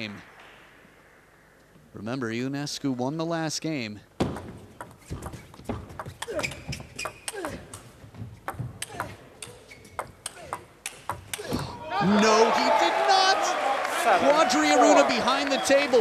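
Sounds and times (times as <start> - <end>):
shoes squeaking on floor: 4.9 - 11.6
crowd cheering and shouting: 11.6 - 16.0.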